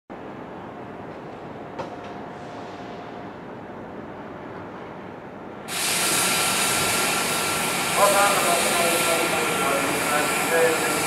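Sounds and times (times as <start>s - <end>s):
steady high whine: 3.0s - 11.0s
electric train running: 5.7s - 11.0s.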